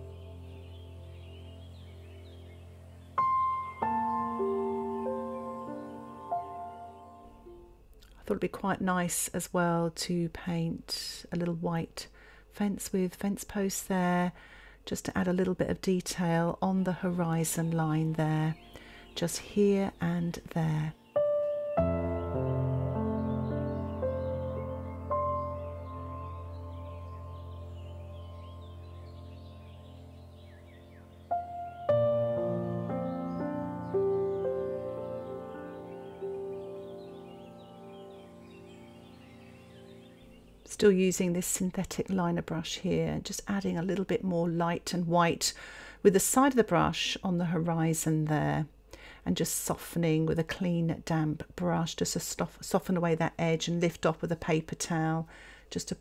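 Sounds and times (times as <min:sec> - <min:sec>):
soft ambient music: 0:00.0 - 0:08.0, 0:17.1 - 0:40.7.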